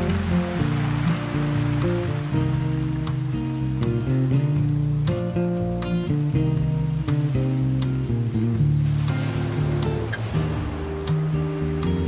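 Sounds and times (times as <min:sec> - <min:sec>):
classical guitar piece: 0:00.0 - 0:12.0
ocean waves breaking: 0:00.0 - 0:12.0.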